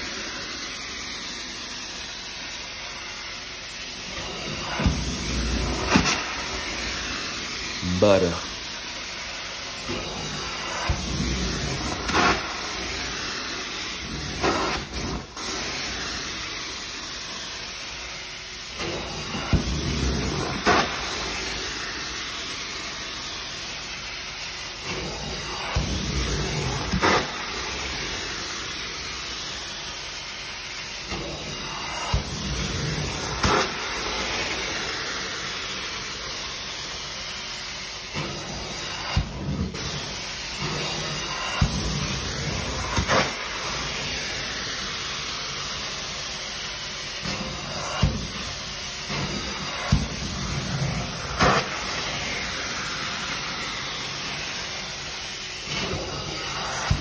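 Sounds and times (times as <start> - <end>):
carpet extractor suction hiss: 0.0 - 57.0.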